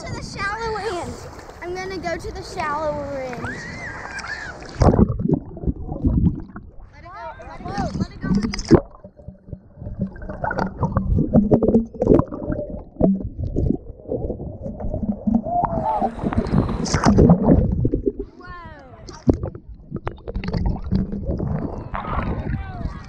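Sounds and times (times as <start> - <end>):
muffled surf gurgling: 0.0 - 23.0.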